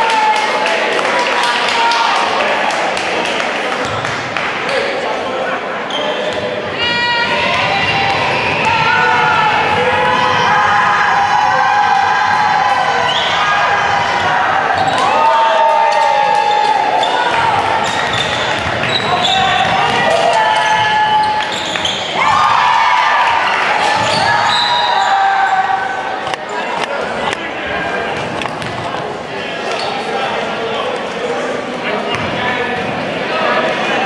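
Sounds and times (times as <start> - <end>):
people shouting: 6.7 - 18.2.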